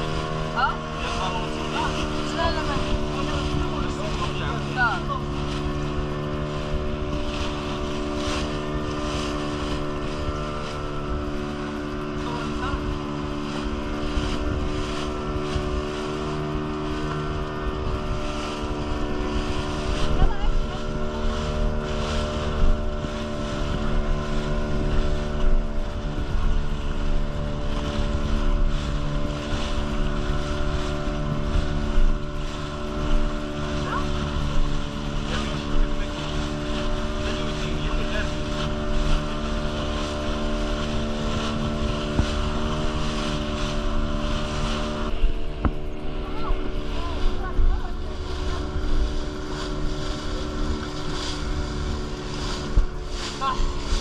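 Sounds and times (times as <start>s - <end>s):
boat motor running: 0.0s - 54.0s
water splashing against hull: 0.0s - 54.0s.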